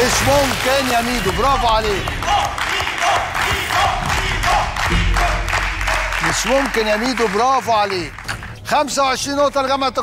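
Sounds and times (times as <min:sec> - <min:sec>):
studio audience applauding and cheering: 0:00.0 - 0:09.0.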